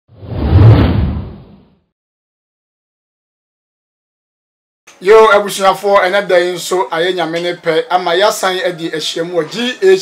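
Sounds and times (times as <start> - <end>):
whoosh with deep low boom: 0.1 - 1.8.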